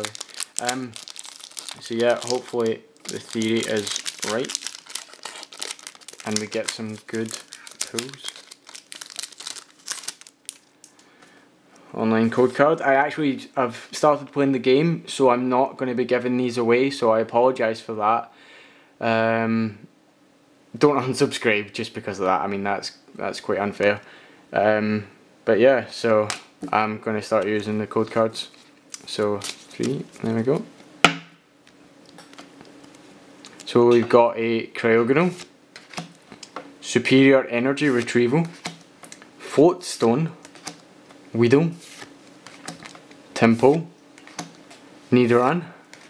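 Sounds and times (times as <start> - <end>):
trading cards being shuffled: 0.0 - 10.7, 37.8 - 39.3, 41.8 - 44.8
foil wrapper crinkling: 0.0 - 11.0, 28.0 - 30.4, 41.9 - 43.2.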